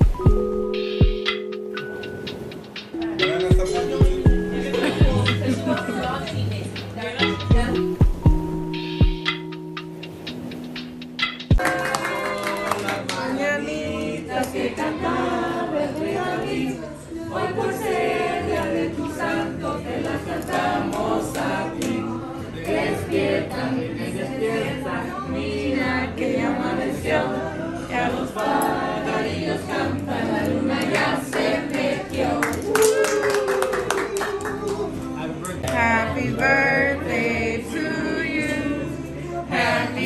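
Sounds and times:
group of people singing: 0:02.9 - 0:08.0, 0:12.1 - 0:32.8, 0:34.9 - 0:40.0
hand clapping: 0:10.8 - 0:13.3, 0:30.8 - 0:35.8.

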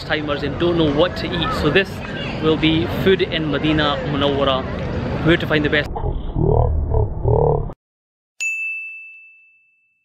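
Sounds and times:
deep slowed-down growling voice: 0:05.8 - 0:07.8
bright ding: 0:08.4 - 0:10.0.

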